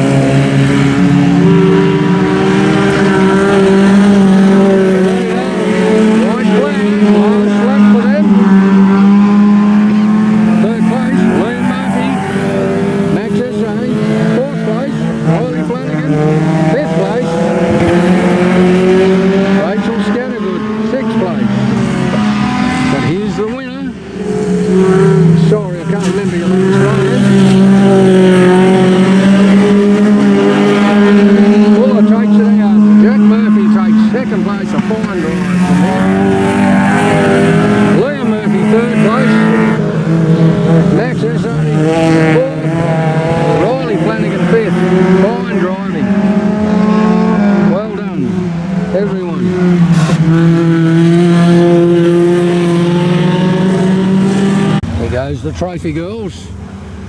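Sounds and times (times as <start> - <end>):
race car engines running hard: 0.0 - 57.0.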